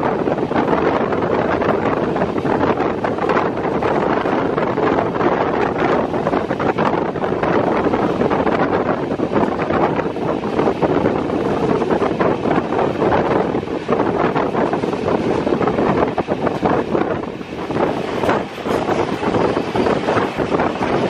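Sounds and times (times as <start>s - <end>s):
train rumble and track clatter: 0.0s - 21.0s
wind on microphone: 0.0s - 21.0s.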